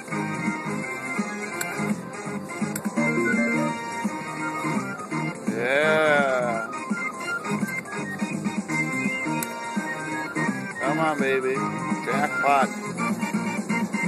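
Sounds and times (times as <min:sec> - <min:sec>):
repeating electronic slot machine tune: 0:00.0 - 0:14.0.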